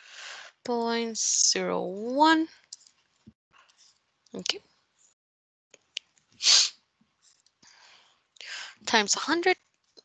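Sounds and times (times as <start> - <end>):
person sneezing: 6.4 - 6.7
person speaking: 8.8 - 9.6.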